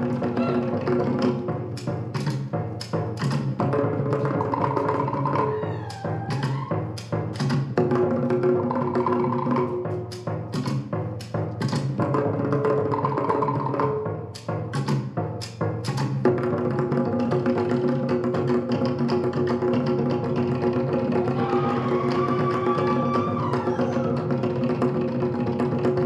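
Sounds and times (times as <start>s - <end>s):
wooden slit drums beating: 0.0s - 26.0s.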